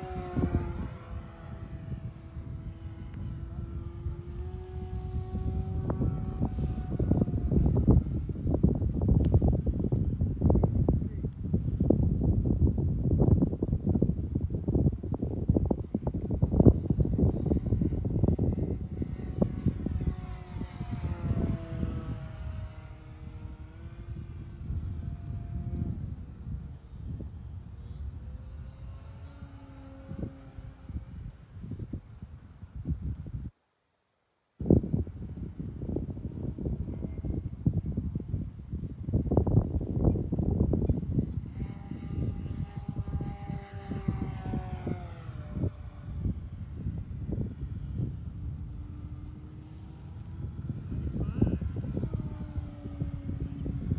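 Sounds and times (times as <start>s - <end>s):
model plane motor whining: 0.0s - 10.9s, 15.3s - 33.2s, 35.1s - 53.9s
wind buffeting microphone: 0.0s - 33.6s, 34.6s - 53.9s.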